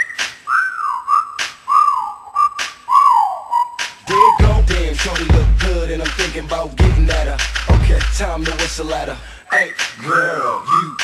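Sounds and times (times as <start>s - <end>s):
whistled melody: 0.0s - 4.6s, 9.5s - 11.0s
sparse hip-hop beat: 1.2s - 11.0s.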